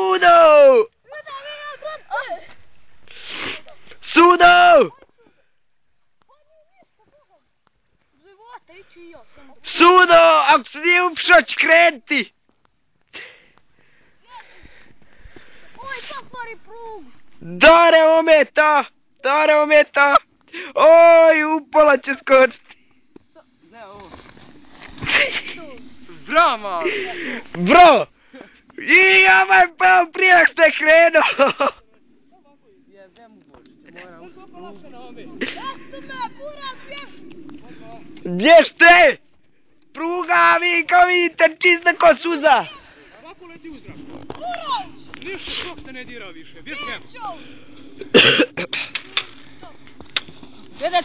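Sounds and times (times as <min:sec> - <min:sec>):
voices: 0:00.0 - 0:05.5, 0:06.2 - 0:12.4, 0:13.1 - 0:51.0
faint steady hiss: 0:00.0 - 0:51.0
person coughing: 0:48.1 - 0:48.7.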